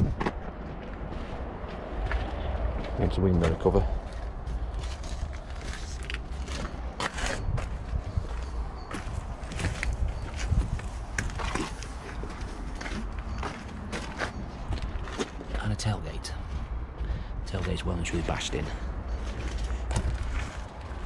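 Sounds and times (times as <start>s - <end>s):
footsteps on gravel: 0.0s - 21.0s.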